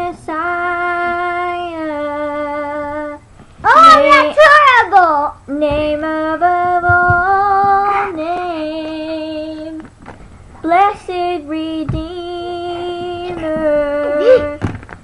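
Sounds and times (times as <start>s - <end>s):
woman singing unaccompanied: 0.0s - 3.3s, 3.9s - 9.9s, 10.6s - 14.8s.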